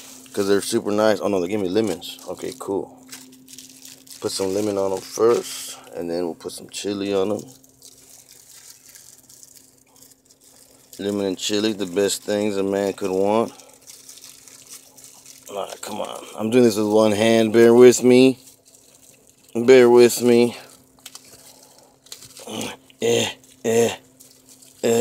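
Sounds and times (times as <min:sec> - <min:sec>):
low steady hum: 0:00.0 - 0:25.0
plastic wrap crinkling: 0:00.0 - 0:25.0
person grunting: 0:22.4 - 0:24.0.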